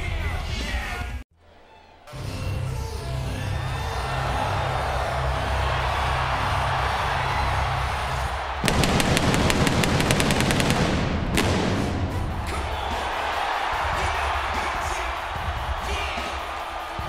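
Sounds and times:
crowd noise: 3.2 - 17.0
rapid sharp bangs: 8.6 - 13.3
arena music: 8.6 - 15.3.

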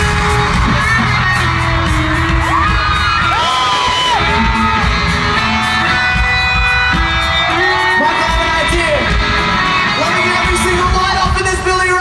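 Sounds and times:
audience cheering and whooping: 0.0 - 12.0
live rock band playing: 0.0 - 12.0.

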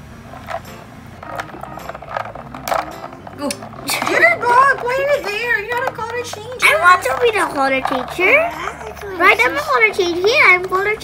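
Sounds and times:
plastic dolls knocking: 0.2 - 11.0
plastic dolls moving in water: 0.2 - 11.0.

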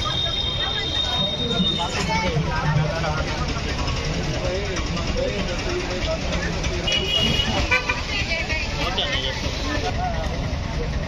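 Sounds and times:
crowd chatter: 0.0 - 11.0
traffic rumble: 0.0 - 11.0
vehicle horn toots: 6.9 - 8.0.

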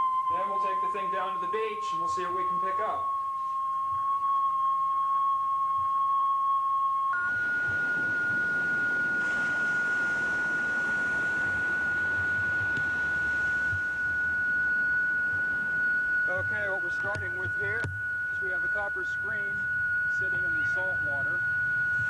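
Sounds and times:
steady radio receiver tone: 0.0 - 4.2, 7.1 - 22.0
steady hiss: 0.0 - 22.0.

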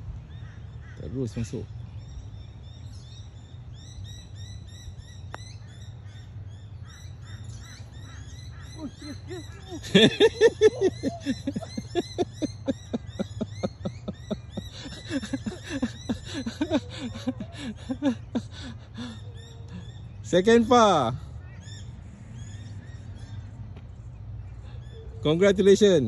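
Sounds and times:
birds chirping: 0.0 - 26.0
rapidly repeated bird calls: 0.2 - 26.0
steady low hum: 1.6 - 20.2.

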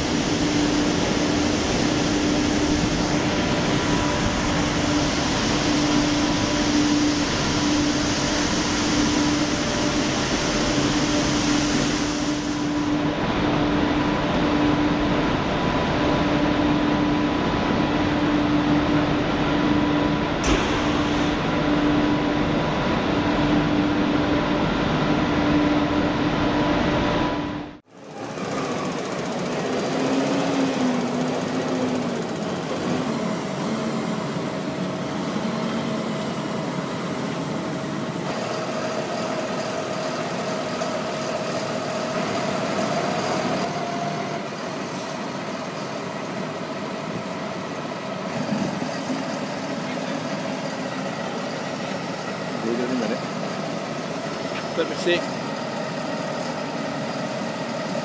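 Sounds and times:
tractor engine running: 26.8 - 58.0.

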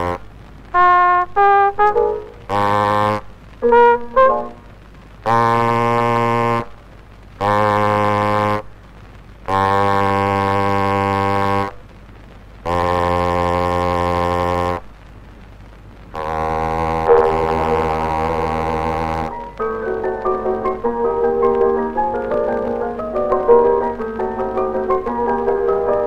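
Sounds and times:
cornet playing low long notes: 0.0 - 6.8, 7.4 - 8.7, 9.5 - 11.9, 12.6 - 14.9, 16.1 - 26.0
gramophone surface noise: 0.8 - 6.7, 16.2 - 26.0.

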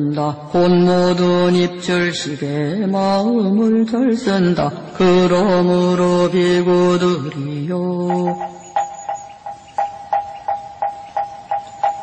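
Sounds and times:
chanted recitation: 0.0 - 9.2
wooden fish knocking: 8.1 - 12.0.

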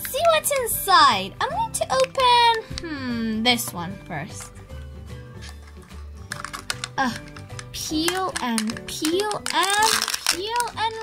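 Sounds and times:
foil wrapper crinkling: 5.4 - 11.0.

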